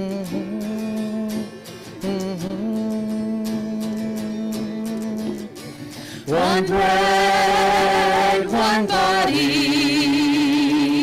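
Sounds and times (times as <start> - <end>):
voices singing a hymn: 6.1 - 11.0.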